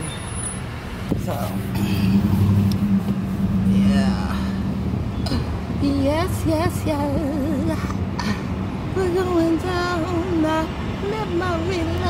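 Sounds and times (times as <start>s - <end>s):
car engine and road rumble: 0.0s - 12.0s
steady low hum: 1.1s - 10.4s.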